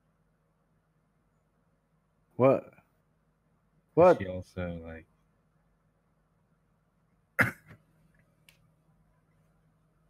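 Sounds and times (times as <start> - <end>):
person coughing: 7.4 - 7.8.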